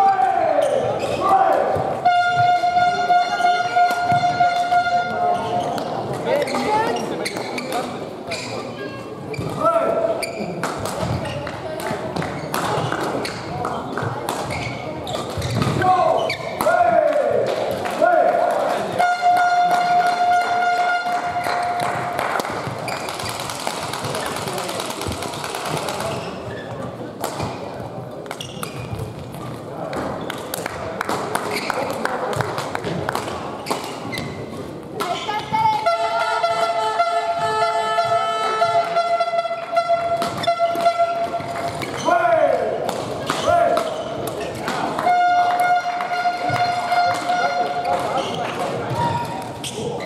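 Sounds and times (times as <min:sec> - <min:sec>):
voices in hall: 0:00.0 - 0:50.0
shoes squeaking on court floor: 0:00.5 - 0:16.6, 0:19.0 - 0:24.8, 0:25.4 - 0:30.5, 0:31.5 - 0:32.0, 0:33.5 - 0:42.2, 0:43.0 - 0:50.0
racket striking shuttlecock: 0:03.7 - 0:04.9, 0:40.1 - 0:42.0.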